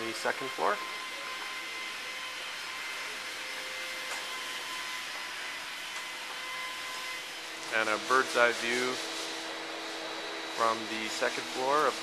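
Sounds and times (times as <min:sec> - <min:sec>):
motor rushing air with whine: 0:00.1 - 0:12.0.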